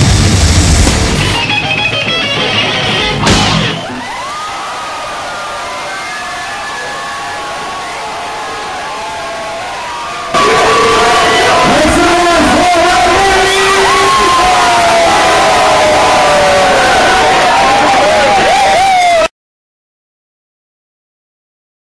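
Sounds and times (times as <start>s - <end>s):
crowd cheering and whooping: 2.6s - 19.3s.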